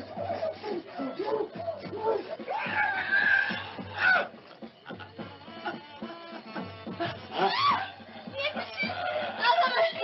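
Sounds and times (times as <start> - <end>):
woman's strained cries: 5.7 - 7.9.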